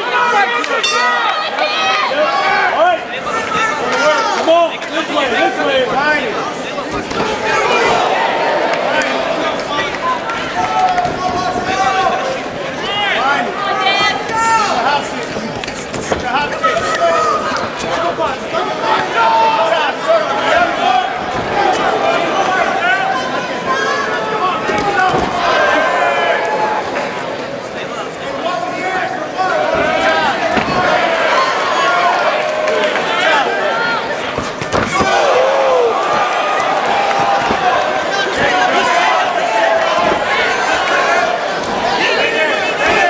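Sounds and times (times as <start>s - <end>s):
crowd shouting and cheering: 0.0s - 43.0s.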